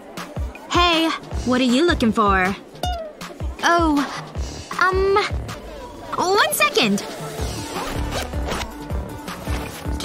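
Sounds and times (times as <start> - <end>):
background music: 0.0 - 10.0
bag zipper rasping: 7.6 - 8.7.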